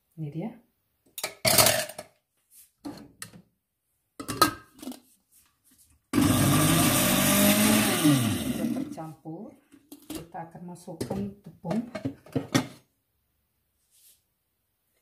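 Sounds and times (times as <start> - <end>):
blender running: 6.2 - 8.9.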